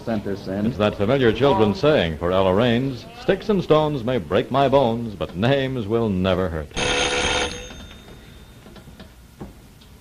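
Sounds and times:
old recording hiss: 0:00.0 - 0:06.9
ringing tone: 0:06.8 - 0:09.0.

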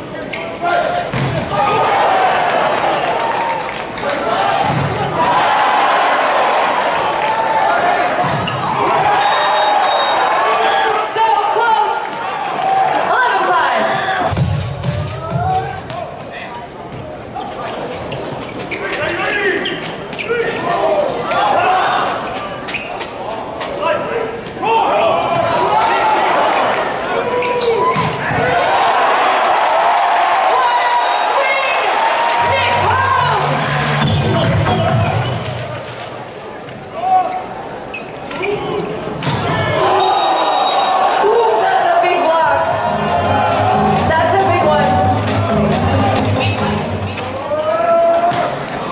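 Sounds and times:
players shouting: 0:00.6 - 0:14.4, 0:24.0 - 0:35.3, 0:38.4 - 0:48.9.

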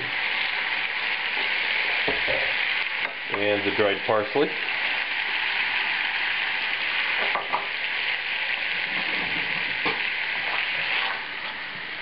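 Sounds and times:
sauce sizzling in frying pan: 0:00.0 - 0:12.0.

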